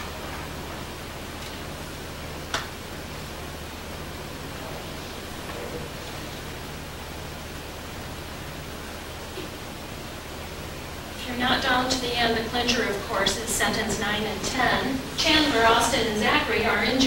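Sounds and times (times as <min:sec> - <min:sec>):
low steady hum: 0:00.0 - 0:17.0
steady hiss: 0:00.0 - 0:17.0.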